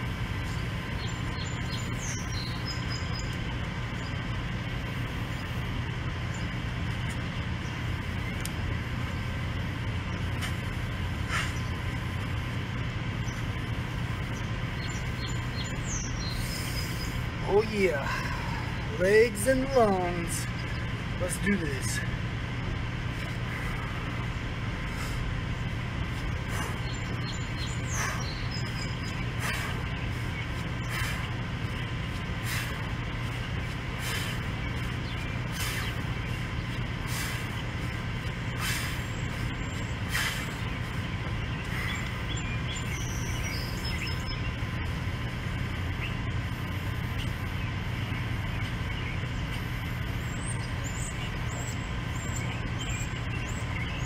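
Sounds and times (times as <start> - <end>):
steady low hum: 0.0 - 54.0
sharp exhales: 11.3 - 11.6, 32.4 - 32.8, 34.0 - 34.4, 35.5 - 36.0, 38.6 - 39.1, 40.1 - 40.6.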